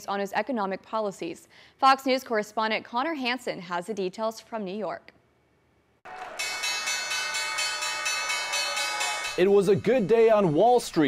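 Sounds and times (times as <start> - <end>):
people clapping: 6.0 - 9.4
electric bell ringing: 6.4 - 10.6.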